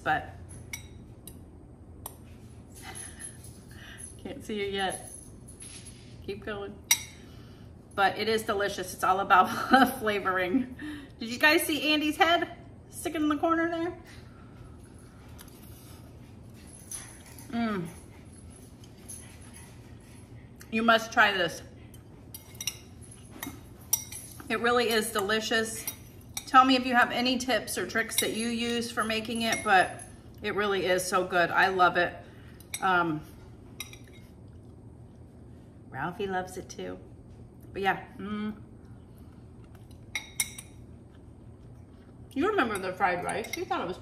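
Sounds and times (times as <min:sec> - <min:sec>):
metal spoon clinking ceramic bowl: 0:28.1 - 0:30.0, 0:42.7 - 0:43.9.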